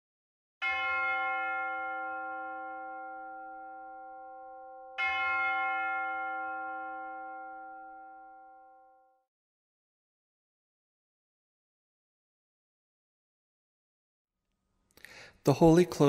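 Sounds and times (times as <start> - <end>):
bell ringing: 0.6 - 9.2.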